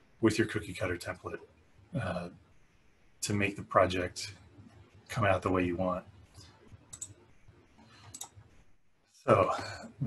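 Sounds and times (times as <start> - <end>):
computer key clicks: 6.9 - 7.2, 8.1 - 8.4.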